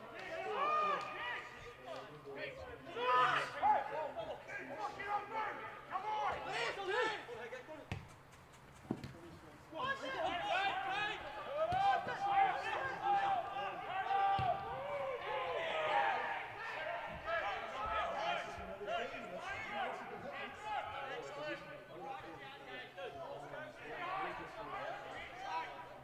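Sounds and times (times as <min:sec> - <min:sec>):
players shouting: 0:00.0 - 0:07.6, 0:09.7 - 0:26.0.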